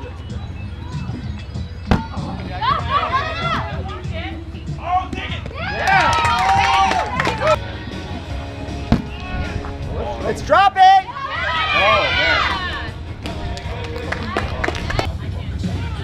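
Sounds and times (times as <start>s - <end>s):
kickball kicked with a thump: 1.8s - 2.3s, 8.9s - 9.2s
players shouting and cheering: 1.9s - 16.0s.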